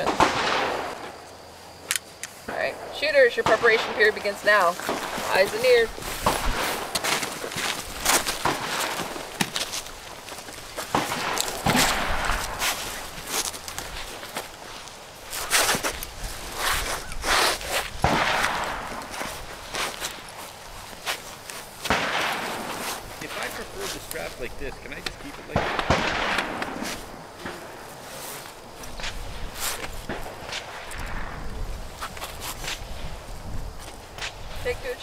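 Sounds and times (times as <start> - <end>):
rifles and gear clicking: 1.8 - 2.4
footsteps on gravel: 3.6 - 25.5, 26.5 - 35.0.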